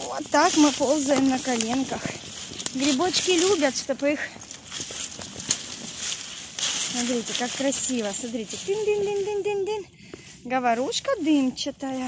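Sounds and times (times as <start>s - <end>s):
dry leaves rustling and crunching: 0.0s - 12.0s.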